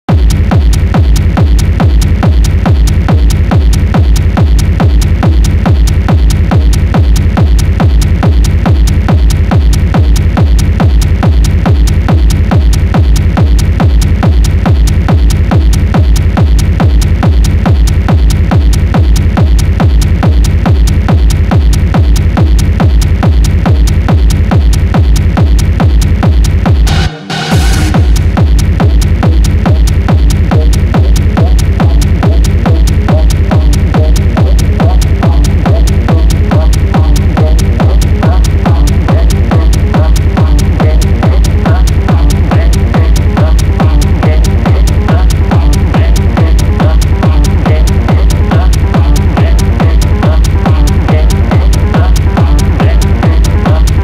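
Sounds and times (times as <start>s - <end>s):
kick drum beat: 0.0s - 54.0s
techno music: 0.0s - 54.0s.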